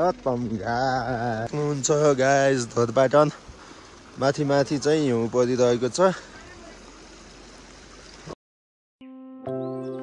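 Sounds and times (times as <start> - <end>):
stream running over stones: 0.0 - 8.4.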